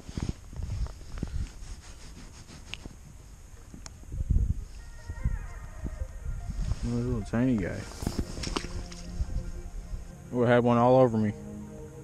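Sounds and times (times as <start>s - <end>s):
faint background music: 4.8s - 12.0s.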